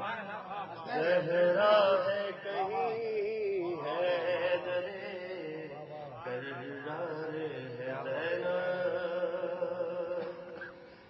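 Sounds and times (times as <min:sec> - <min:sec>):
man chanting into a microphone: 0:00.0 - 0:10.6.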